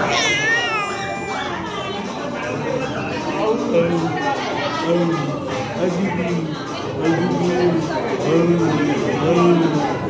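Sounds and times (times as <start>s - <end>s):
infant squealing: 0.0s - 2.0s.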